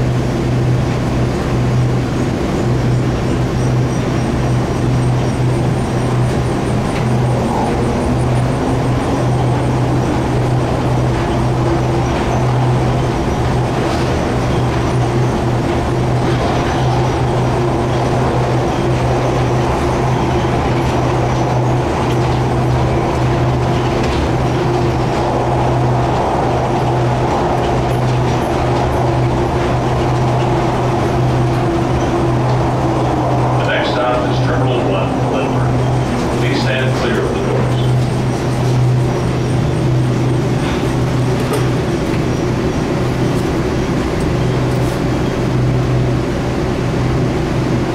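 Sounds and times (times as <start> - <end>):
shuttle tram humming and whining: 0.0 - 47.9.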